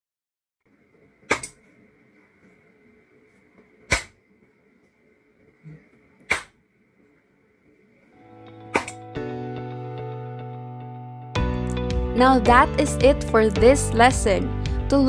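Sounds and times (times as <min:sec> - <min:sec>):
background music: 0:08.2 - 0:15.0
sharp hand claps: 0:08.8 - 0:09.0.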